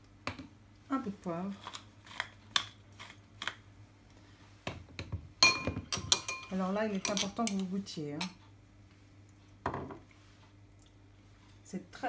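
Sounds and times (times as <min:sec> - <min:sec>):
spoon clinking against glass bowl: 0:05.4 - 0:07.6.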